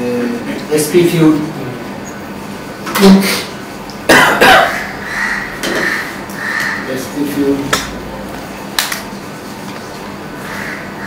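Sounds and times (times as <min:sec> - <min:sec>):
person coughing: 0:04.1 - 0:04.8.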